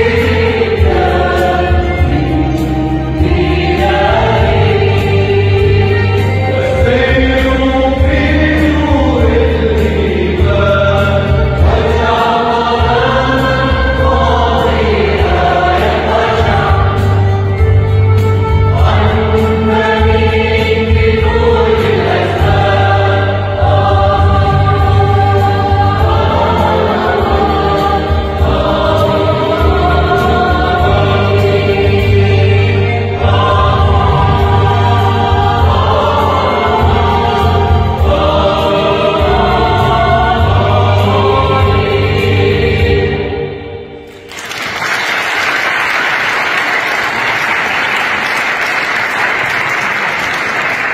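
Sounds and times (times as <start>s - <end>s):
choir singing a hymn: 0.0s - 44.3s.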